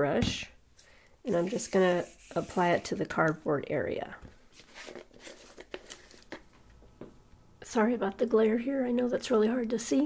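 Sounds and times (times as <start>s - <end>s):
craft materials rustling: 4.5s - 6.7s.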